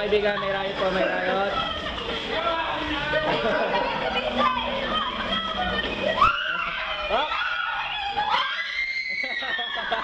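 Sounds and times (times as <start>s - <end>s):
children shouting and chattering: 0.2s - 10.0s
child screaming: 6.2s - 10.0s.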